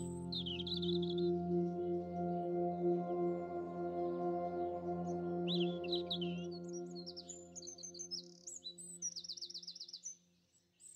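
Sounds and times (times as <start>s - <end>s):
birds chirping: 0.0s - 10.1s.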